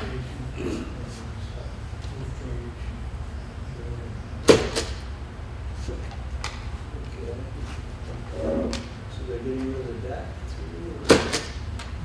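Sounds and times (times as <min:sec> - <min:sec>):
low room hum: 0:00.0 - 0:12.0
murmured speech: 0:08.1 - 0:08.9.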